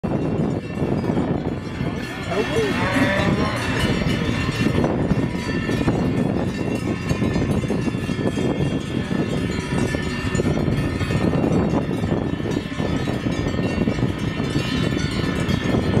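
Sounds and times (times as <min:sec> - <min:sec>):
cowbells clanking: 0:00.0 - 0:16.0.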